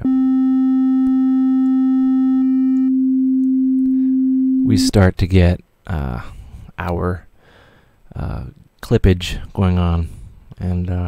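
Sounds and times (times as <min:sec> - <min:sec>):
sine-wave test tone: 0:00.0 - 0:04.9.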